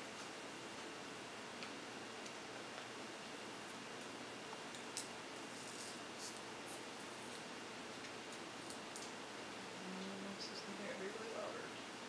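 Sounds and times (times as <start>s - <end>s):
low hiss: 0.0s - 12.0s.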